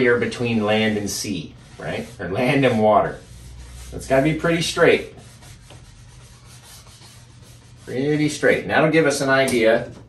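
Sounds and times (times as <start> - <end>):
paintbrush rubbing on canvas: 0.0 - 8.6.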